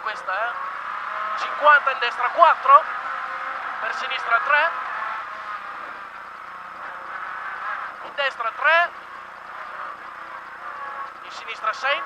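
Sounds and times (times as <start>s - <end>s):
car engine at speed: 0.0s - 12.0s
road noise: 0.0s - 12.0s.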